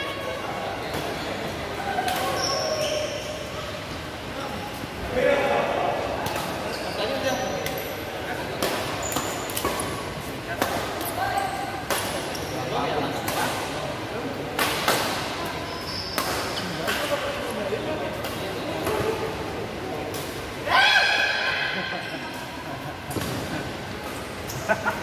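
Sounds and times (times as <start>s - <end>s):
background voices chattering: 0.0s - 25.0s
shoe squeaks on court: 2.2s - 3.4s, 15.6s - 16.8s.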